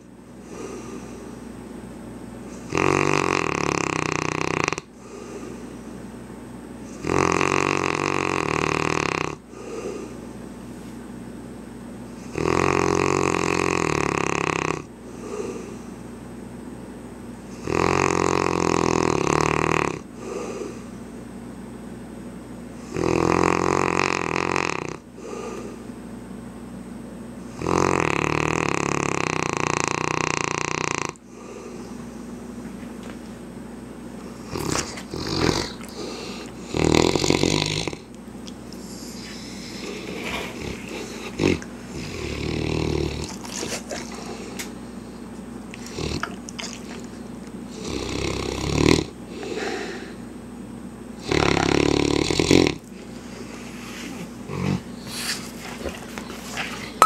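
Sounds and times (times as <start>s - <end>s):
dog snoring: 2.5s - 5.6s, 6.8s - 10.2s, 12.2s - 15.9s, 17.5s - 20.9s, 22.8s - 25.8s, 27.5s - 32.0s, 34.3s - 38.2s, 38.8s - 44.7s, 45.7s - 47.1s, 47.7s - 50.2s, 51.2s - 52.9s, 54.0s - 57.0s
dog stirring: 34.5s - 36.7s, 43.1s - 44.7s, 45.7s - 47.4s, 55.1s - 57.0s.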